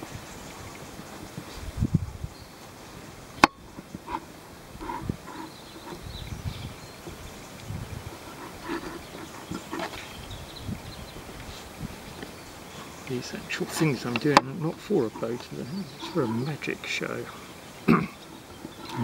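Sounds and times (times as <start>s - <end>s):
soft rope rubs and thumps: 3.4s - 6.0s, 7.0s - 10.1s.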